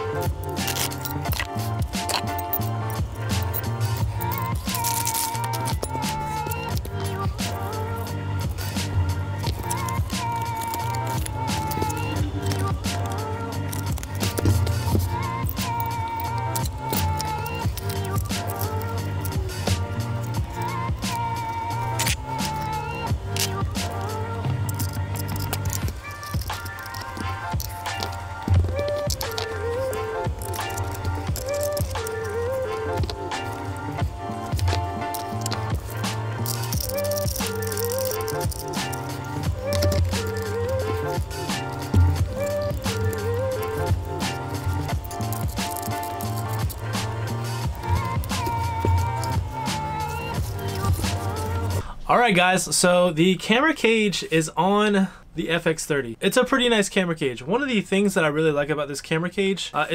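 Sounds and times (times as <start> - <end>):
background music with steady beat: 0.0 - 52.9.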